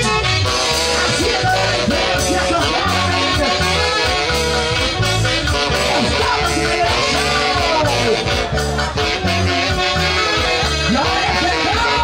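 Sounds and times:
live band playing dance music: 0:00.0 - 0:12.0.

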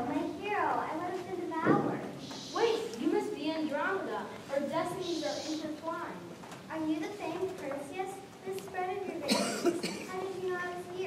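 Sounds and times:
child speaking: 0:00.0 - 0:11.0
person coughing: 0:09.2 - 0:10.2.

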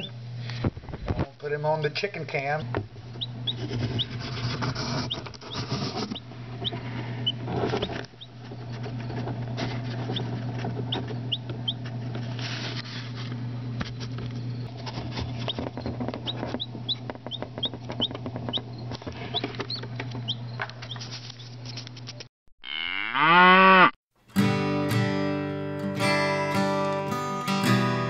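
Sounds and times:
steady low hum: 0:00.0 - 0:22.3
chick peeping: 0:03.1 - 0:11.9, 0:15.3 - 0:21.5
cow mooing: 0:22.6 - 0:24.0
acoustic guitar strumming: 0:24.3 - 0:28.0.

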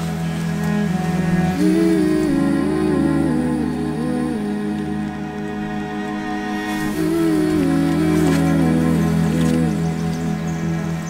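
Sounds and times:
slow gentle background music: 0:00.0 - 0:11.0.

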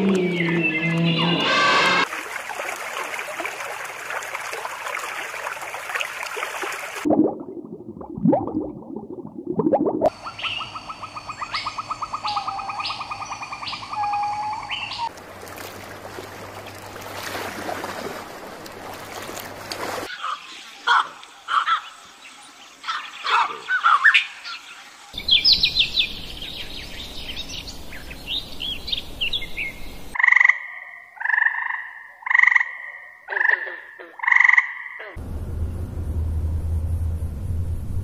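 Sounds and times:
steady low hum: 0:35.2 - 0:38.0.

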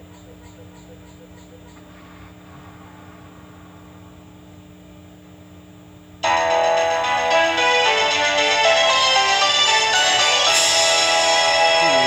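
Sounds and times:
faint steady hum: 0:00.0 - 0:12.0
logo music with bell-like notes: 0:06.2 - 0:12.0.

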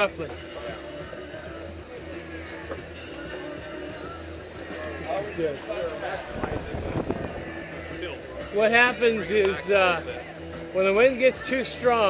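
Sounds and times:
faint voices: 0:00.0 - 0:12.0
strong wind: 0:06.2 - 0:07.6.

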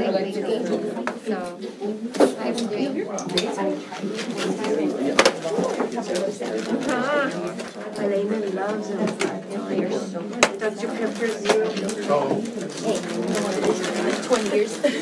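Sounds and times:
people chatting: 0:00.0 - 0:15.0.

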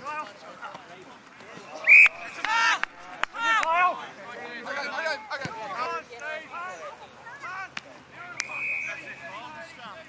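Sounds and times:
whistle blowing: 0:01.8 - 0:02.4, 0:08.3 - 0:09.2.

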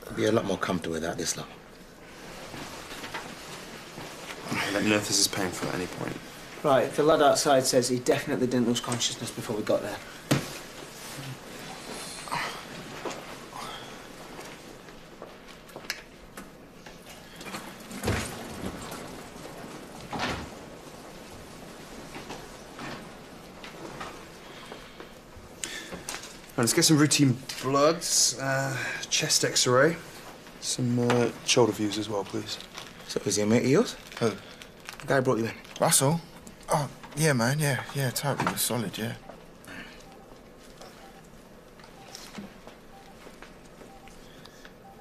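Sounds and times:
steady low hiss: 0:00.0 - 0:45.0
clothing rustling: 0:00.5 - 0:45.0.

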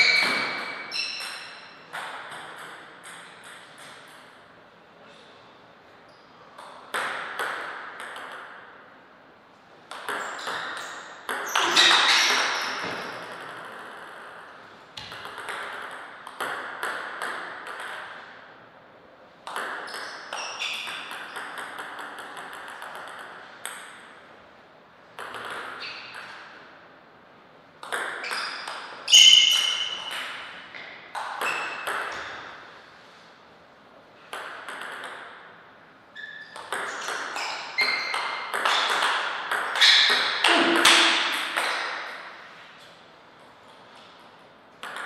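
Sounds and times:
ball bouncing on table: 0:00.0 - 0:04.3, 0:06.6 - 0:08.7, 0:09.9 - 0:14.4, 0:15.0 - 0:18.3, 0:19.4 - 0:24.1, 0:25.2 - 0:26.4, 0:27.8 - 0:32.6, 0:34.3 - 0:35.5, 0:36.2 - 0:42.2, 0:44.8 - 0:45.0
table tennis ball hitting paddles: 0:00.0 - 0:04.5, 0:06.5 - 0:08.8, 0:09.9 - 0:18.4, 0:19.4 - 0:24.2, 0:25.1 - 0:26.6, 0:27.8 - 0:32.7, 0:34.2 - 0:35.6, 0:36.2 - 0:42.4, 0:44.8 - 0:45.0.

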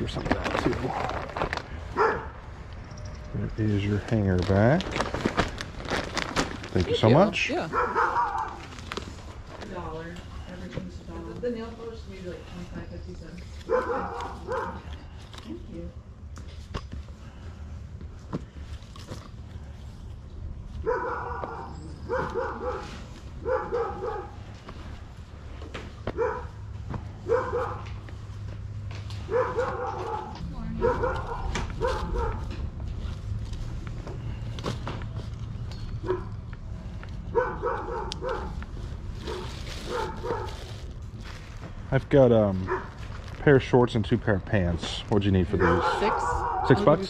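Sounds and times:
dog barking: 0:02.0 - 0:02.4, 0:07.7 - 0:08.7, 0:13.7 - 0:14.9, 0:20.8 - 0:24.4, 0:26.1 - 0:26.6, 0:27.2 - 0:28.0, 0:29.2 - 0:32.6, 0:36.0 - 0:36.4, 0:37.3 - 0:38.6, 0:39.2 - 0:40.7, 0:42.7 - 0:43.0, 0:45.6 - 0:46.9.

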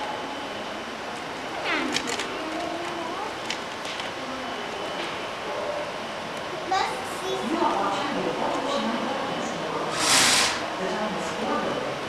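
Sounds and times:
hubbub of large room: 0:00.0 - 0:12.0.

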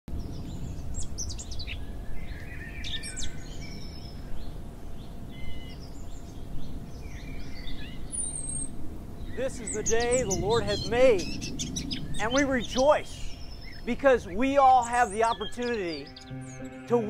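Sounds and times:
small birds chirping: 0:00.1 - 0:17.0.

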